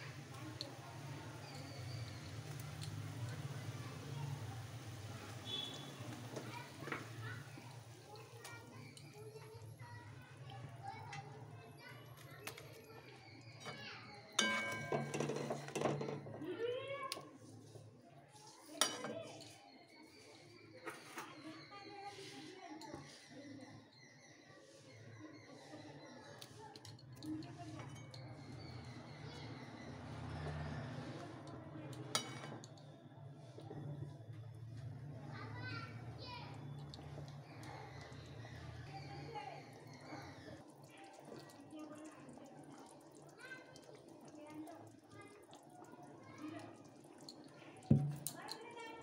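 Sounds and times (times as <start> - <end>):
faint children's voices: 0.0 - 49.0
gravy simmering: 0.0 - 49.0
metal spatula scraping pot: 13.6 - 16.3.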